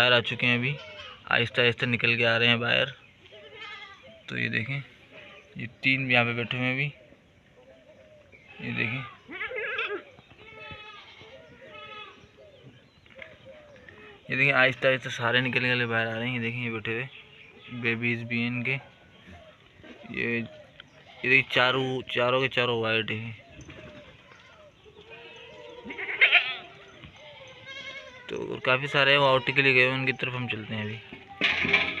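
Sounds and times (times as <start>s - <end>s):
farm animal bleat: 0.0s - 1.5s, 3.4s - 4.1s, 8.5s - 12.4s, 21.0s - 22.0s, 24.3s - 32.0s.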